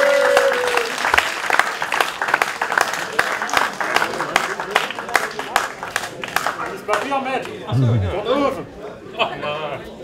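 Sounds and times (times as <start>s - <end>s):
small crowd clapping: 0.0s - 7.9s
voices talking: 7.7s - 8.3s.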